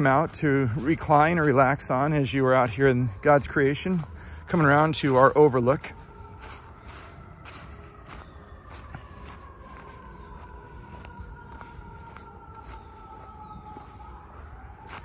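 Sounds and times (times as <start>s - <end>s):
faint siren wailing: 0.0s - 15.0s
footsteps on dry leaves: 0.0s - 15.0s.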